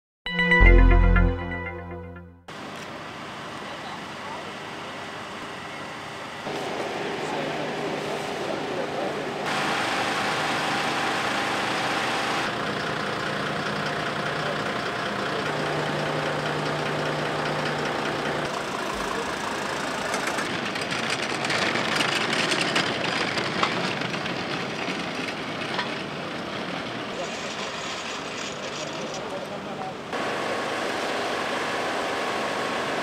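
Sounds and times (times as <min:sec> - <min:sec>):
diesel engines idling: 0:02.6 - 0:33.0.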